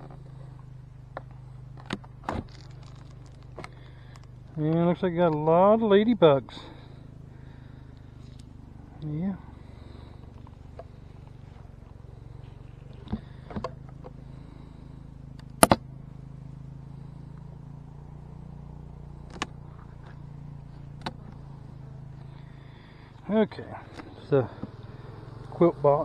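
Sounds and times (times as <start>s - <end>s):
bee colony humming: 0.0s - 26.0s.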